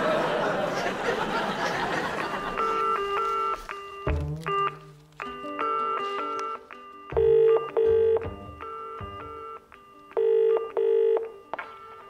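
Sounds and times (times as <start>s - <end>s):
light music: 1.6s - 12.0s
telephone ringing tone: 7.2s - 11.4s.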